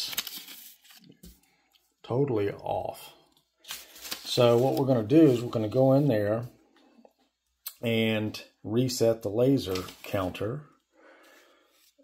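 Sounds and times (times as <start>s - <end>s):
paper rustling: 0.0s - 1.6s, 3.3s - 6.0s, 9.4s - 10.5s.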